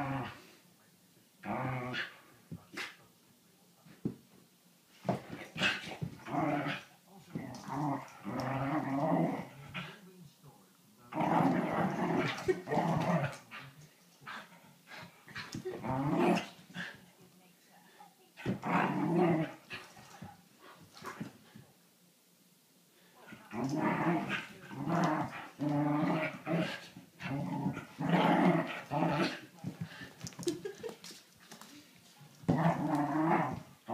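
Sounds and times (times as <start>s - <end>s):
dogs growling and play-fighting: 0.0s - 0.6s, 1.4s - 3.0s, 5.0s - 10.1s, 11.1s - 17.1s, 18.4s - 21.6s, 23.3s - 31.7s, 32.3s - 33.9s.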